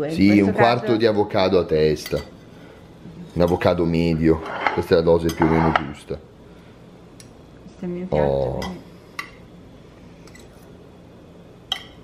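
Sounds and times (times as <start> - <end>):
low steady hum: 0.0 - 12.0
cutlery clinking on plate: 4.4 - 5.9, 11.7 - 12.0.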